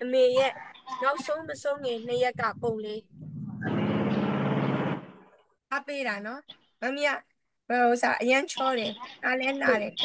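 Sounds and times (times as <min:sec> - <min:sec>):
motor engine running: 0:03.6 - 0:05.2.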